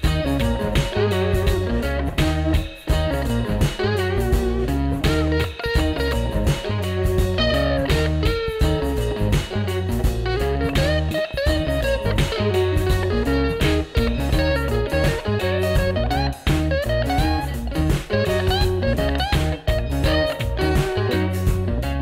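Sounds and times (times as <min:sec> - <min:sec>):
bass line: 0:00.0 - 0:22.0
plucked guitar melody: 0:00.0 - 0:22.0.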